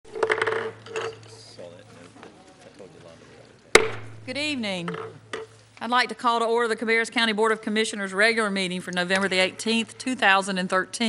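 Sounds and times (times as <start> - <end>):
sharp knocks and clatter: 0.1 - 1.3, 3.8 - 5.5
low electrical hum: 0.1 - 11.0
faint voices murmuring: 0.9 - 5.6.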